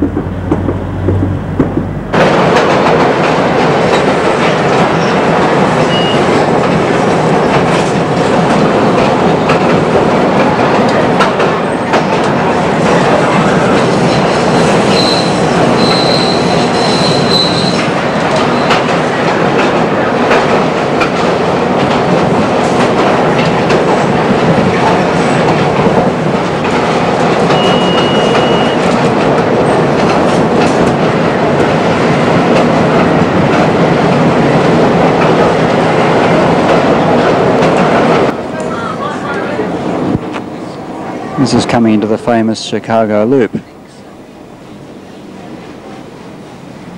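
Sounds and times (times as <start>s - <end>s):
train wheel and rail noise: 0.0s - 46.9s
high wheel squeal: 14.5s - 17.8s, 27.5s - 28.8s.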